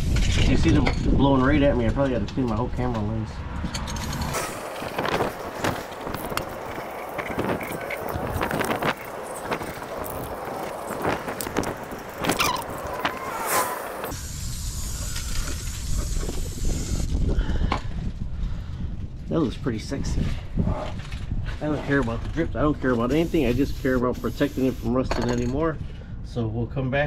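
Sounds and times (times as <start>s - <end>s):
wind buffeting microphone: 0.0s - 24.0s, 24.6s - 27.0s
short squeals: 12.2s - 14.1s.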